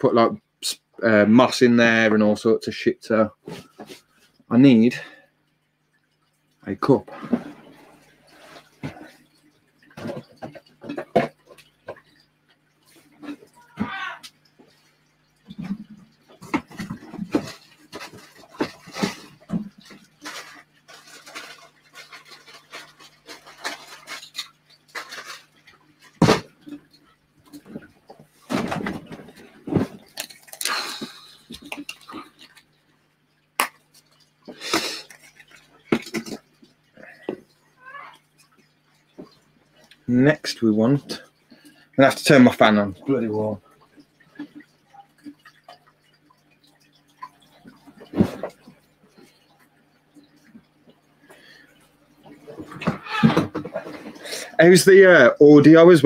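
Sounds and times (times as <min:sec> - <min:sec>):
low steady hum: 0:00.0 - 0:56.0
objects clattering on shelves: 0:27.5 - 0:32.5.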